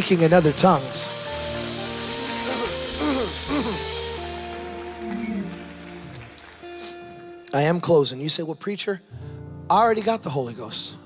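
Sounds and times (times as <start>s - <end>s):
soft band music with held chords: 0.0s - 11.0s.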